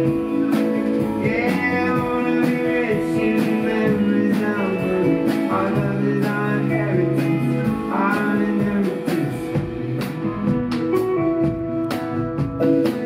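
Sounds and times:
strummed acoustic guitar: 0.0s - 11.0s
drum kit: 0.0s - 13.0s
electric guitar: 0.0s - 13.0s.

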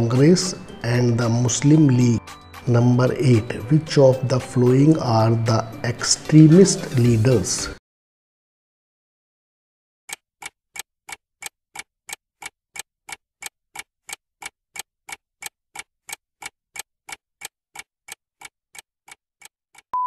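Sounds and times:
clock ticking: 0.0s - 7.2s, 10.1s - 19.9s.

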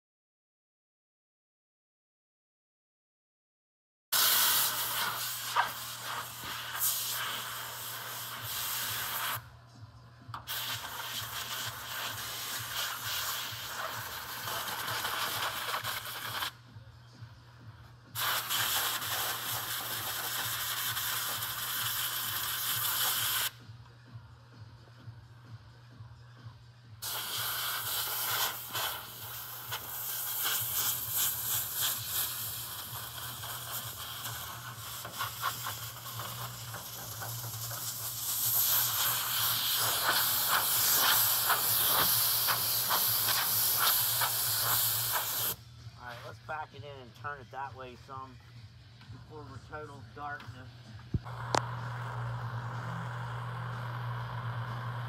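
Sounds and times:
compressed air blow gun hissing: 4.2s - 9.4s, 10.5s - 16.5s, 18.2s - 23.5s, 27.0s - 45.6s.

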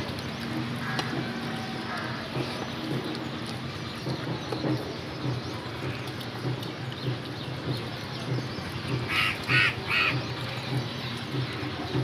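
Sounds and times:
bird calling: 8.9s - 10.4s.

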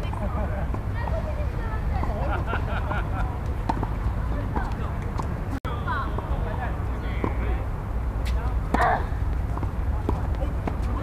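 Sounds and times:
players talking: 0.0s - 11.0s
tennis balls being hit: 3.2s - 5.4s.

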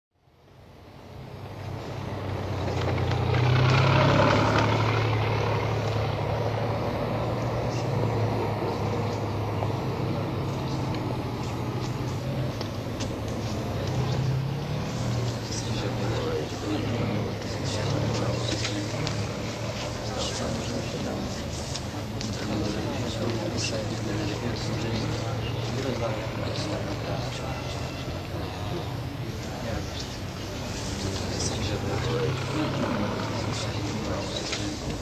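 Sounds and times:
heavy vehicle engine rumbling: 0.4s - 35.0s
murmur of crowd voices: 0.6s - 35.0s.

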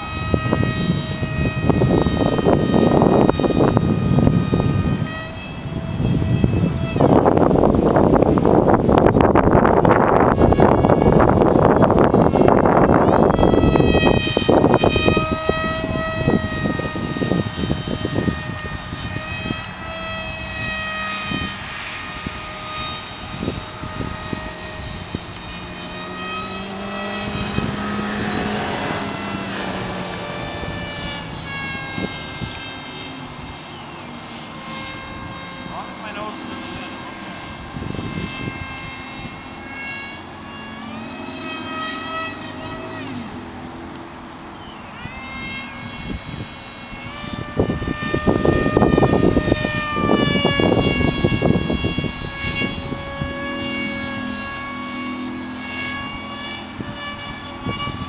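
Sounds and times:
model airplane motor whine: 0.0s - 58.0s
wind buffeting microphone: 0.0s - 58.0s.

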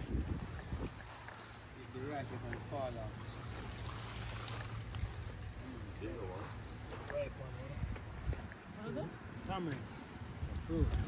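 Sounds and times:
branches clicking and rustling: 0.0s - 5.9s
low outdoor rumble: 0.0s - 11.0s.

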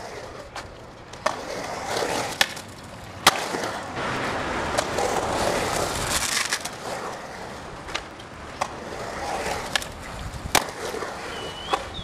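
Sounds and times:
skateboard clacks: 0.0s - 12.0s
skateboard wheels rolling on concrete: 0.0s - 12.0s
wheels scraping in a slide: 0.0s - 12.0s.

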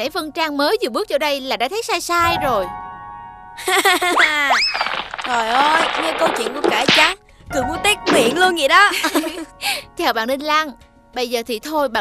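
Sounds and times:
faint background music chord: 7.2s - 12.0s.

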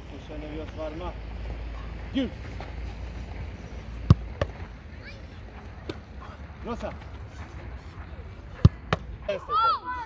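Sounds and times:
football kick impacts: 4.0s - 4.8s, 8.5s - 9.1s.

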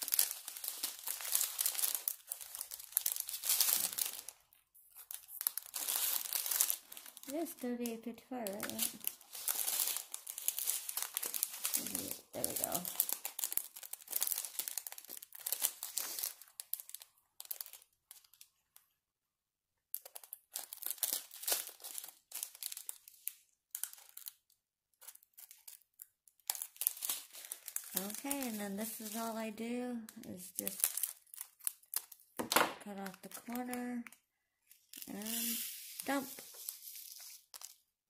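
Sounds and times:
plastic bags crinkling: 0.0s - 18.8s, 20.0s - 37.9s.

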